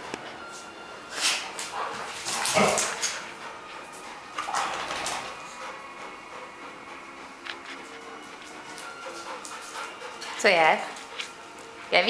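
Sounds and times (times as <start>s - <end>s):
dogs playing on tiled floor: 0.0s - 12.0s.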